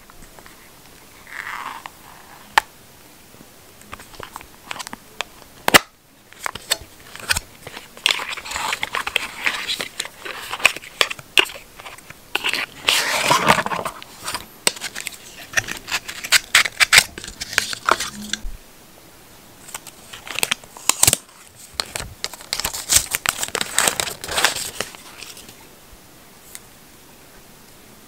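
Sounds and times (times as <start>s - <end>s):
cardboard and paper rustling: 6.4s - 18.4s, 19.6s - 25.6s.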